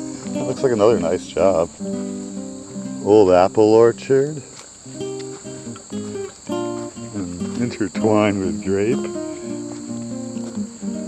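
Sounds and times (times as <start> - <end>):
acoustic guitar music: 0.0 - 11.0
crickets chirping: 0.0 - 11.0.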